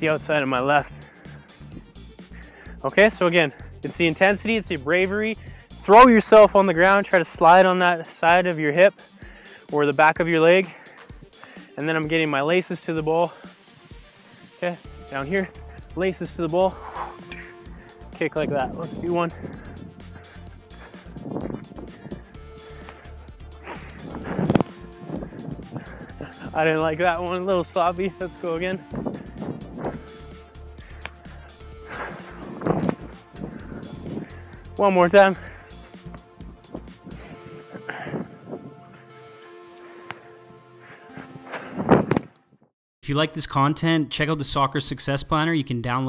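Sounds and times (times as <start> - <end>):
background music: 0.0 - 46.0.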